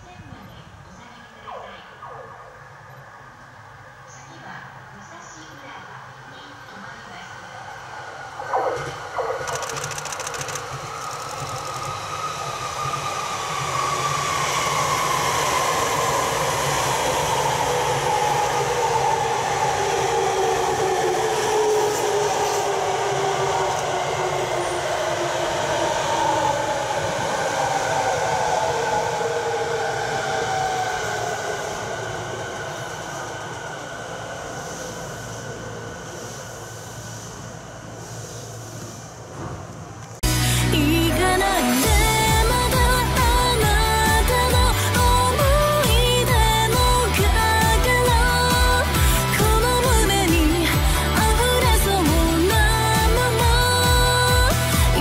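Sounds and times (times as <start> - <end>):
electric train passing: 0.0 - 55.0
inverter motor whine: 8.5 - 27.0.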